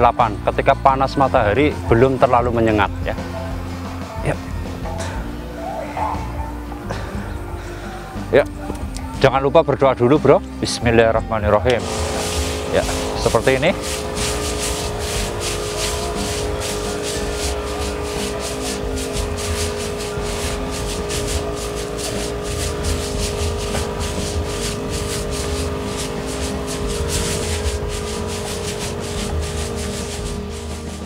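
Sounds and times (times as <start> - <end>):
background music: 0.0 - 31.0
sprayer pump humming: 11.6 - 31.0.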